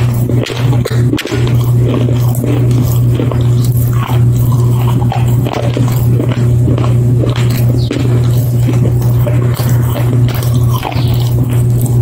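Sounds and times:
crisp crunching bites: 0.0s - 12.0s
loud steady low hum: 0.0s - 12.0s.

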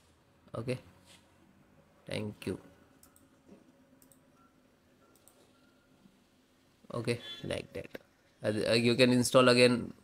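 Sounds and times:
computer mouse clicks: 3.0s - 4.3s, 5.1s - 5.5s.

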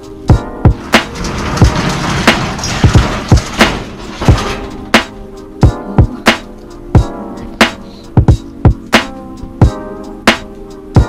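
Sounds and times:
metal roll-up door rattling: 0.1s - 6.6s.

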